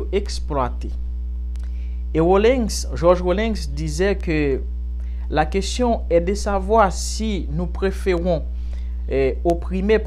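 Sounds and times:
man speaking: 0.0 - 1.1, 2.1 - 8.5, 9.1 - 10.0
electrical mains hum: 0.0 - 10.0.

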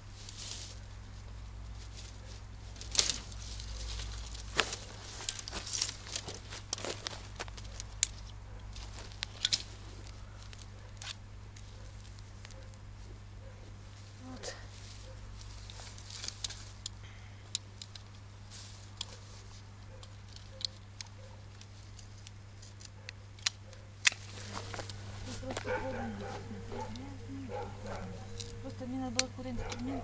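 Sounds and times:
secateurs snipping branches: 2.8 - 12.7, 15.4 - 30.0
faint wavering animal call: 24.5 - 30.0.

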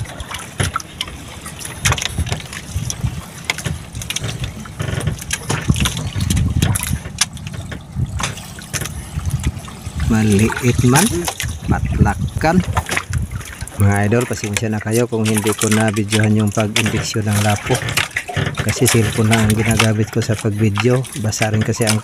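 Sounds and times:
knocks and clicks from boat: 0.0 - 22.0
water lapping against boat hull: 0.0 - 22.0
wind rumbling on microphone: 0.0 - 22.0.

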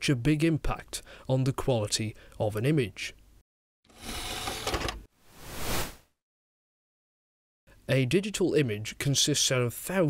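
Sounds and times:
whoosh: 5.4 - 6.0.

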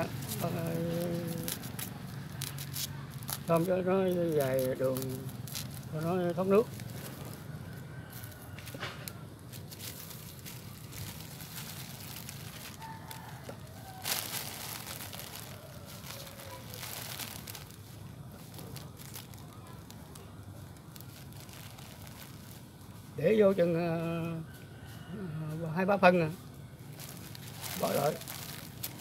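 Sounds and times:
plastic sheeting crinkling: 0.0 - 23.8, 26.9 - 29.0.

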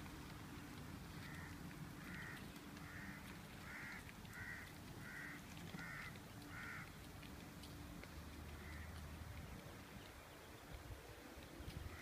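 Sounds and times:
bird calling: 1.2 - 7.0.

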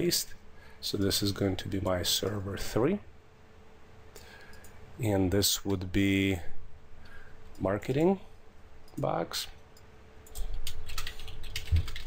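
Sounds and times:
keyboard typing: 10.2 - 12.0.

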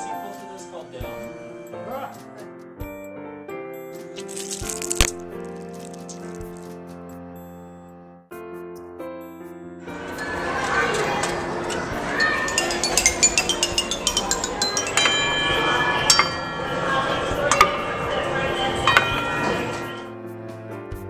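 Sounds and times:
metal bowl bells ringing: 9.9 - 20.1
voices: 9.9 - 20.1
ball tapping xylophone bars: 10.0 - 20.0.

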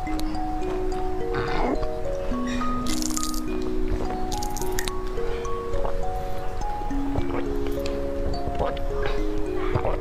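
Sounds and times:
slow background music: 0.0 - 10.0.

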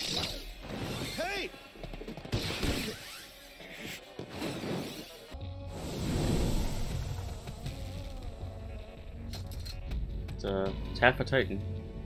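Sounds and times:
soundtrack music and effects: 0.0 - 12.0.

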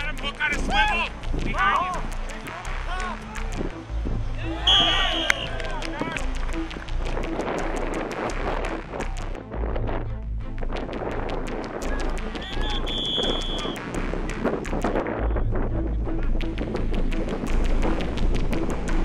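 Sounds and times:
players and coaches shouting: 0.0 - 6.4, 11.9 - 13.7
whistle blowing: 4.6 - 6.3, 12.3 - 13.8
knocks and claps: 4.7 - 9.4.

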